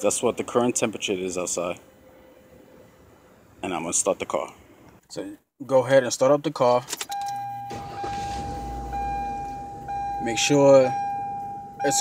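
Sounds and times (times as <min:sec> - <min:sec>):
car engine starting: 0:07.0 - 0:12.0.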